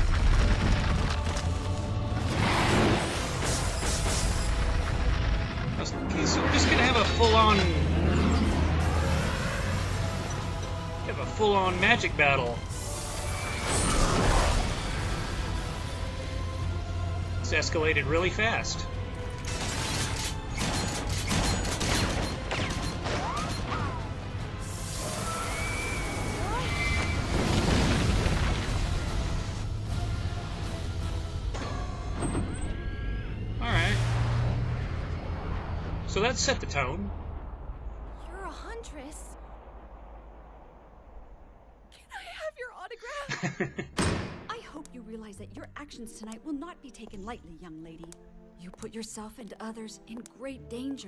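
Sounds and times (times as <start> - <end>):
action music: 0.0 - 26.5
magic and blast sound effects: 33.6 - 41.9.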